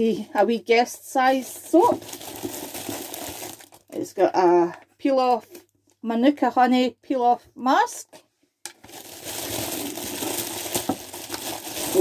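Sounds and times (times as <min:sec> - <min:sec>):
packaging sachets crinkling: 0:01.3 - 0:04.0, 0:08.8 - 0:12.0.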